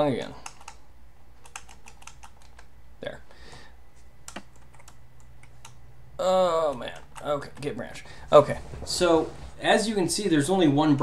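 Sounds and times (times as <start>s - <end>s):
typing on computer keyboard: 0.4s - 0.8s, 1.4s - 2.7s, 4.3s - 5.8s.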